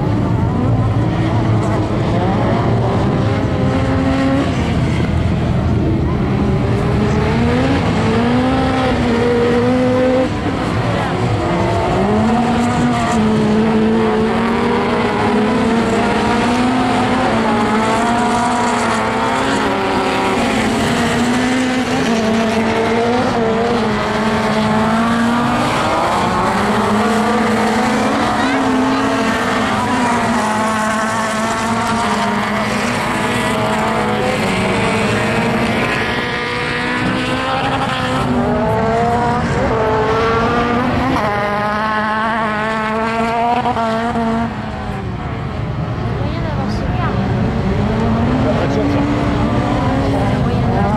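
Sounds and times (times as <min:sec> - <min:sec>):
racing car engines: 0:00.0 - 0:50.9.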